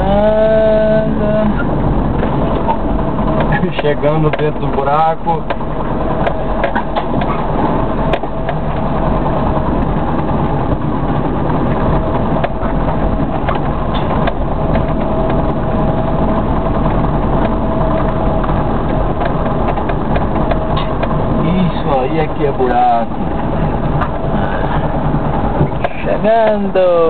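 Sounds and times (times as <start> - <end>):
car engine running: 0.0 - 27.0
road noise inside car: 0.0 - 27.0
light knocks and rattles: 1.6 - 27.0.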